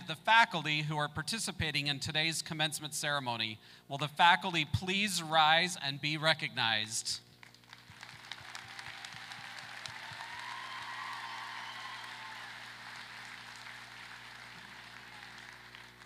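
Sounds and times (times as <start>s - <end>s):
audience applause: 7.6s - 16.0s.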